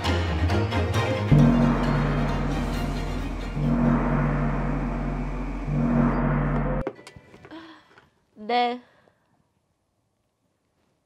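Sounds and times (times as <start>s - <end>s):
fog machine buzzing: 1.3s - 6.8s.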